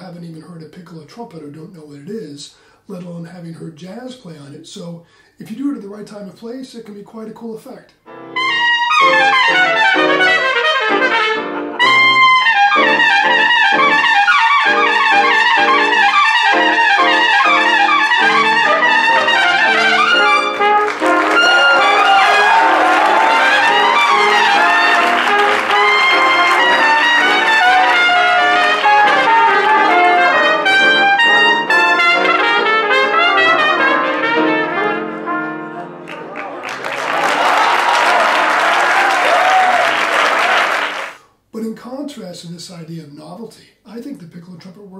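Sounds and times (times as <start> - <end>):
piccolo trumpet jazz solo: 8.0 - 36.1
trumpet ensemble: 8.1 - 41.2
applause: 20.5 - 29.8, 36.0 - 41.2.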